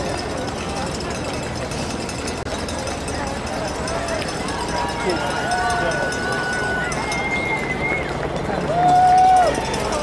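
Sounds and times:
runners' footsteps on asphalt: 0:00.0 - 0:10.0.

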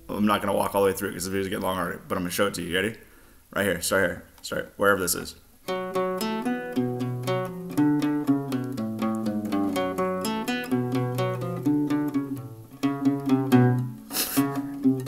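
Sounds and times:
acoustic guitar picking: 0:05.7 - 0:15.0.

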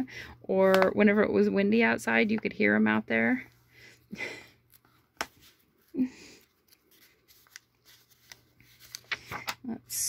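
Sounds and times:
paper rustling: 0:04.7 - 0:09.6.

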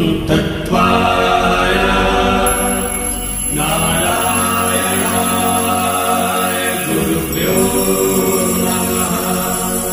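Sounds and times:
mantra chanting with music: 0:00.0 - 0:09.9.

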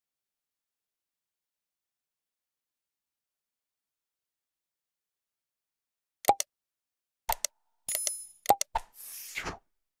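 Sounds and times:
mouse clicks: 0:06.3 - 0:06.5, 0:07.3 - 0:08.9.

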